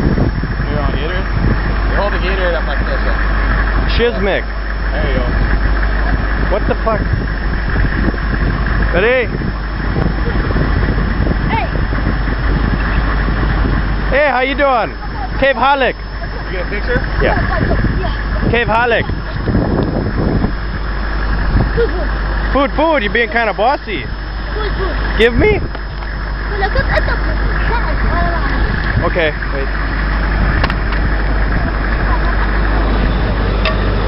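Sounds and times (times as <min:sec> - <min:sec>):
vehicle engine idling: 0:00.0 - 0:34.0
faint voices: 0:08.6 - 0:34.0.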